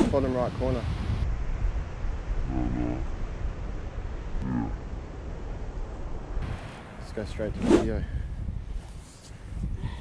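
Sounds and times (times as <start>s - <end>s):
wind on microphone: 0.0s - 10.0s
man's low wordless vocal sounds: 2.4s - 3.1s.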